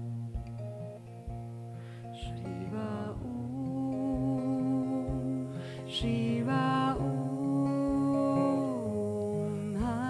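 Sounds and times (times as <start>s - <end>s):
acoustic guitar strumming: 0.0s - 10.0s
person humming long note: 2.1s - 10.0s.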